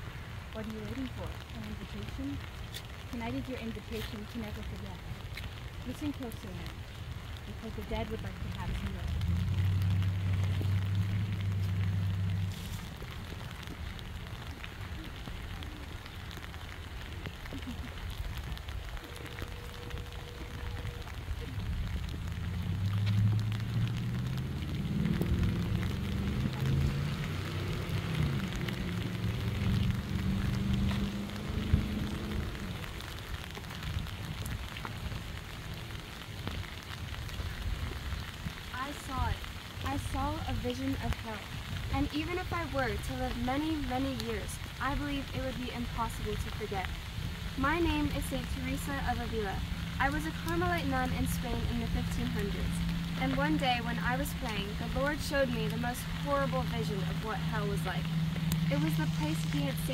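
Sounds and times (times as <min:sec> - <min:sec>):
steady rain falling: 0:00.0 - 0:59.9
low drone: 0:47.3 - 0:59.9.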